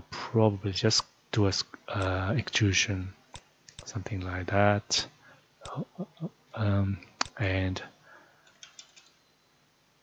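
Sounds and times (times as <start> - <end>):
faint keyboard keystrokes: 8.4 - 9.2.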